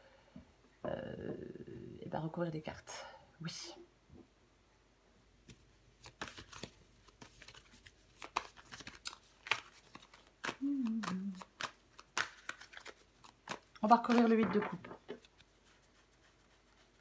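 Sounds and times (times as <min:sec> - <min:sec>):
person humming: 0:00.8 - 0:02.0, 0:10.5 - 0:11.5
cards shuffling: 0:05.4 - 0:17.0.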